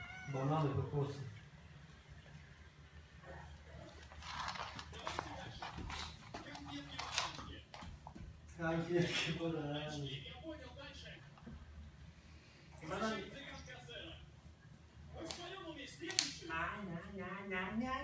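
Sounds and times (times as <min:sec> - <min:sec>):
animals scuffling and rustling: 0:03.8 - 0:08.3.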